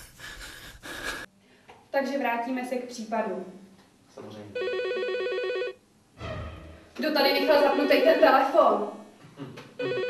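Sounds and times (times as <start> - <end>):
mobile phone ringing: 4.6 - 5.8, 7.3 - 8.6, 9.8 - 10.0.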